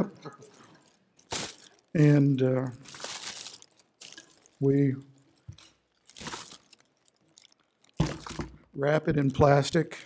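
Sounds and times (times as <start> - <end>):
plastic bag crinkling: 0.4 - 8.5.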